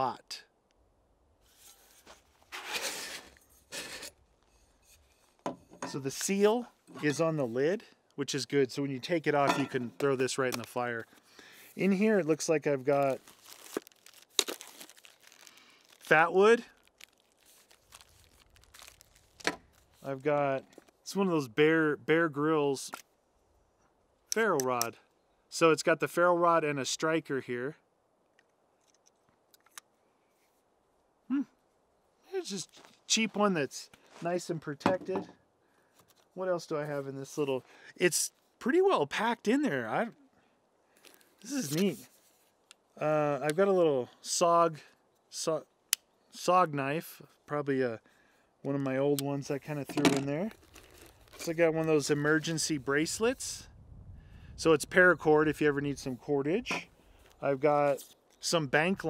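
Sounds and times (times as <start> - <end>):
plastic wrapping crinkling: 12.8 - 20.0, 50.5 - 51.5.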